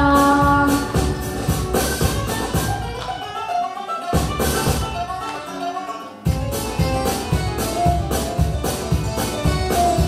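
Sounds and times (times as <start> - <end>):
girl singing: 0.0 - 1.1
instrumental backing track: 0.0 - 10.0.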